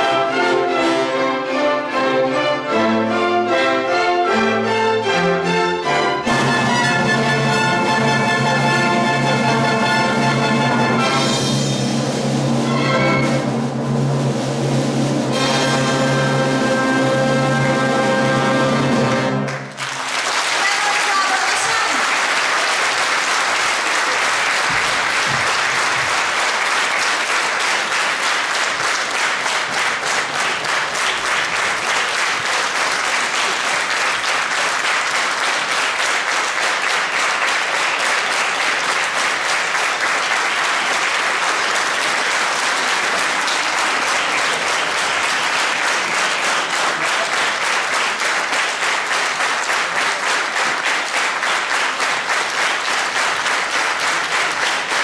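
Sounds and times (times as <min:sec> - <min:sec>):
audience applauding: 0:18.8 - 0:55.0.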